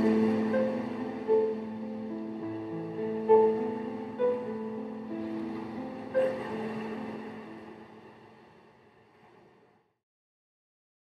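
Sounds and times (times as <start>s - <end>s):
slow sad piano music: 0.0s - 9.3s.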